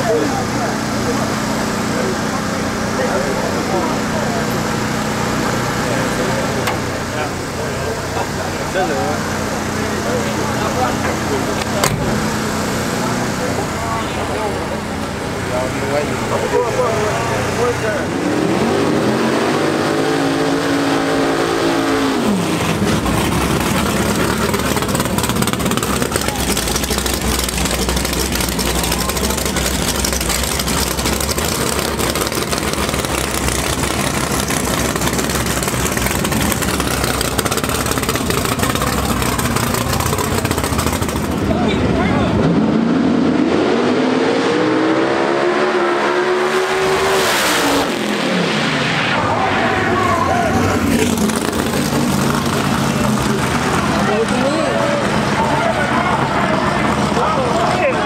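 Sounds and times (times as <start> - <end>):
car accelerating hard: 0.0 - 58.0
race car engines revving: 0.0 - 58.0.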